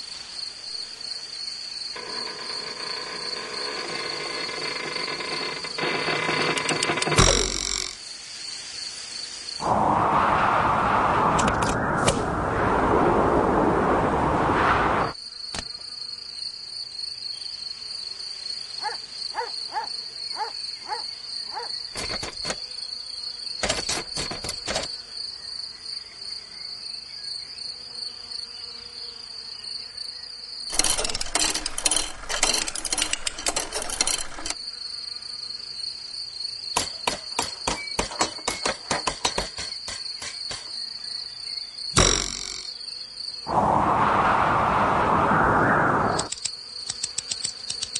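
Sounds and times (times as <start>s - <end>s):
insects chirring: 0.0s - 14.2s, 14.8s - 47.9s
rapid clicking bursts: 30.7s - 34.6s.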